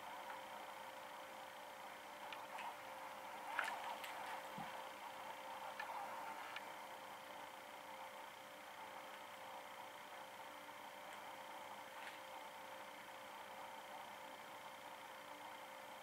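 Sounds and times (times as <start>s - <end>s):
faint room hum: 0.0s - 16.0s.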